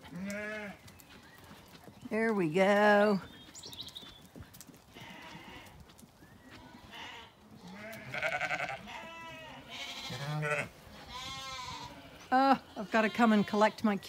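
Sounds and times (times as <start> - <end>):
sheep bleating: 0.1 - 0.8, 5.0 - 5.8, 6.7 - 13.8.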